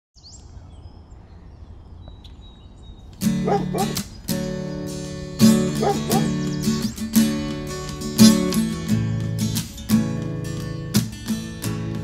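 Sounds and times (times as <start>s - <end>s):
birds chirping: 0.2s - 7.8s.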